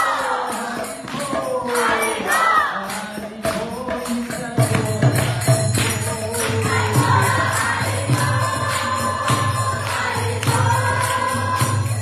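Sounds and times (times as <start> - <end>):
jingling metal percussion: 0.0 - 12.0
people singing a devotional chant: 0.0 - 12.0
hand claps: 2.9 - 12.0.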